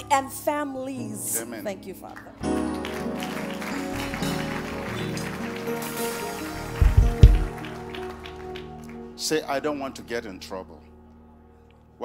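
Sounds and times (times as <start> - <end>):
soft keyboard chords: 0.0 - 11.9
deep thumps: 6.8 - 7.6.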